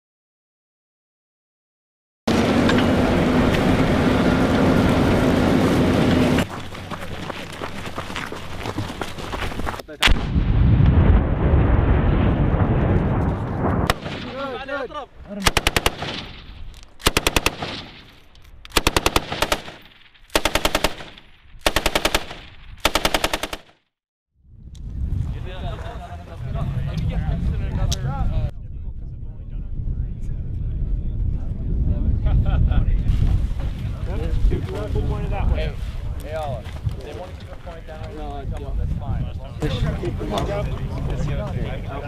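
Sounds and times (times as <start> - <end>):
heavy machine gun firing: 13.9 - 14.5, 15.4 - 23.8.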